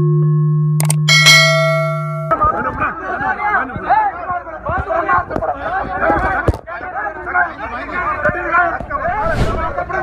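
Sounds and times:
bright bell chime: 1.1s - 2.4s.

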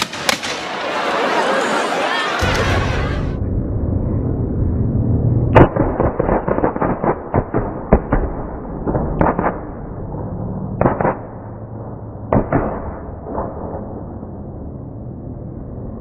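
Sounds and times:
shotgun blasts: 0.0s - 0.7s, 10.8s - 11.4s.

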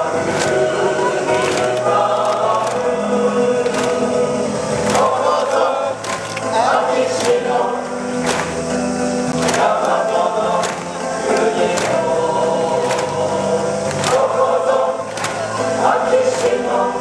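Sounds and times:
choir song over loudspeakers: 0.0s - 17.0s.

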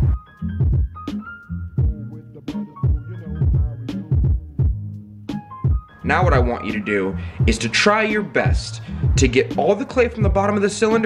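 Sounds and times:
deep bass thumps: 0.0s - 1.1s, 1.8s - 2.2s, 2.8s - 6.6s, 7.4s - 7.6s, 8.5s - 9.5s.

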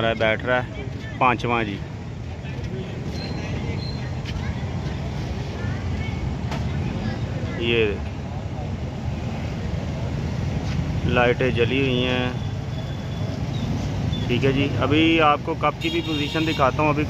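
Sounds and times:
distant traffic rumble: 0.0s - 17.0s.

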